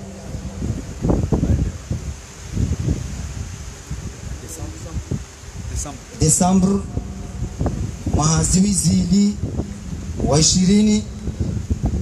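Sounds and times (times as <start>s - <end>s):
low rumbling on microphone: 0.0s - 12.0s.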